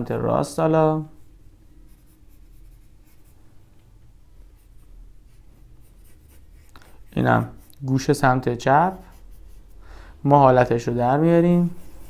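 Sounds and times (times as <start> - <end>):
pencil scratching on paper: 1.1 - 3.4, 4.6 - 9.8, 11.4 - 12.0.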